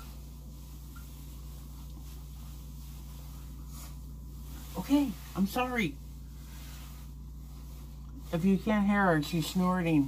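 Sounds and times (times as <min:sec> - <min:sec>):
steady low hum: 0:00.0 - 0:10.0
towel rubbing a face: 0:00.0 - 0:10.0.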